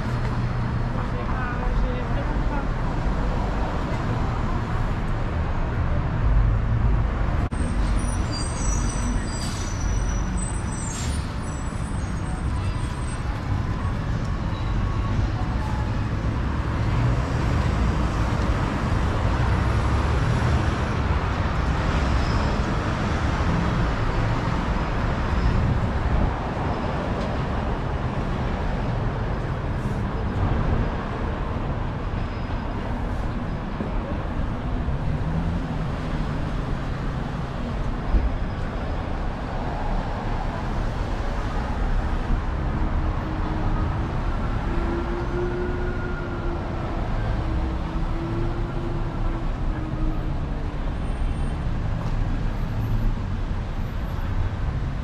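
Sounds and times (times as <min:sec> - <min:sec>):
city street traffic rumble: 0:00.0 - 0:55.0.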